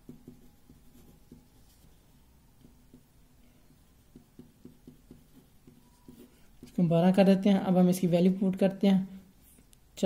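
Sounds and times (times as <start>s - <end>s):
pen writing on paper: 4.1s - 6.8s.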